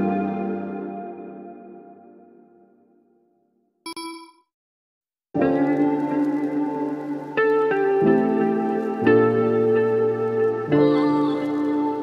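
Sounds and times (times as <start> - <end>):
background music: 0.0 - 2.4, 5.4 - 12.0
short bell-like ding: 3.9 - 4.4.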